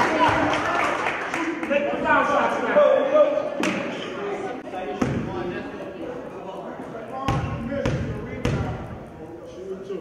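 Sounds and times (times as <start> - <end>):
background voices chattering: 0.0 - 10.0.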